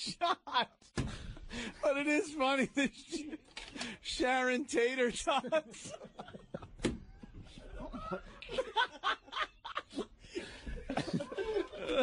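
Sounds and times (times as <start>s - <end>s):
men laughing: 0.0s - 3.6s, 5.1s - 12.0s.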